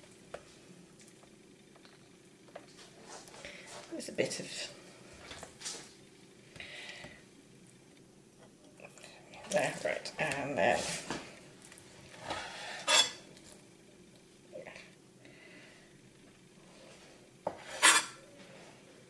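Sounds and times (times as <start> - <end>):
knife scraping on cutting board: 12.3 - 13.2, 17.5 - 18.2.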